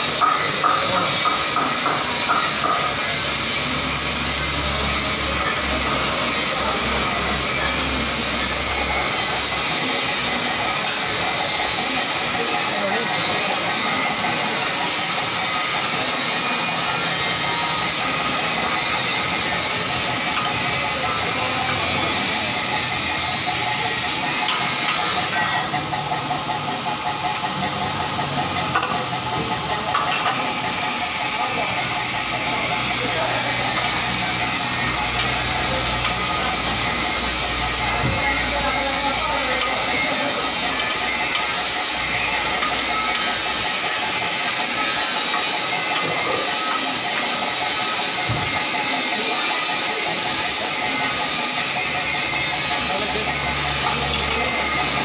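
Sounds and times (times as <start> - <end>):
running machinery hiss: 0.0 - 55.0.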